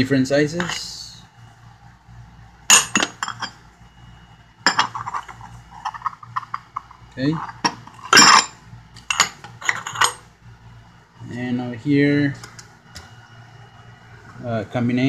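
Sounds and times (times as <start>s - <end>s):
metal tools clanking in drawer: 2.7s - 3.6s, 7.2s - 10.2s.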